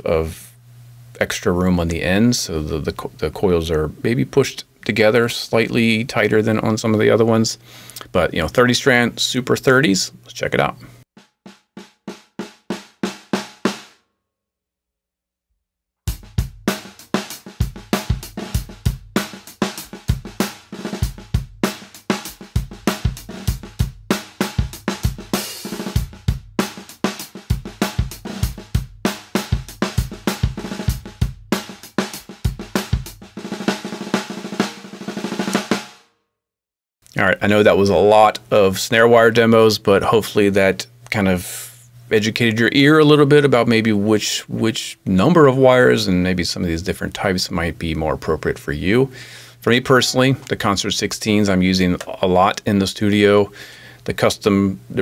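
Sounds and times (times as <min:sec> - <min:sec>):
drum kit groove: 0:03.7 - 0:13.9, 0:16.1 - 0:36.0, 0:46.9 - 0:55.0
snare drum strokes: 0:16.1 - 0:36.0.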